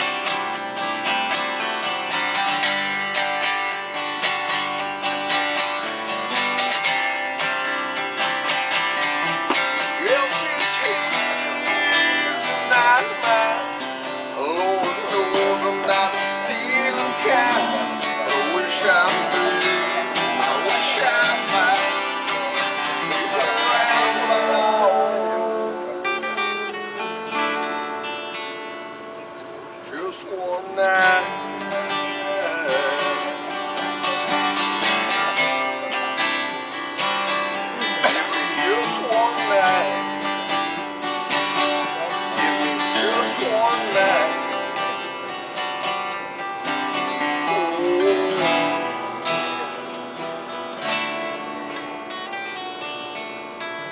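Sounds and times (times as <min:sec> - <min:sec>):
acoustic guitar: 0:00.0 - 0:53.9
person singing: 0:09.7 - 0:27.5, 0:30.0 - 0:35.8, 0:37.5 - 0:40.9, 0:41.6 - 0:45.4, 0:46.9 - 0:49.8.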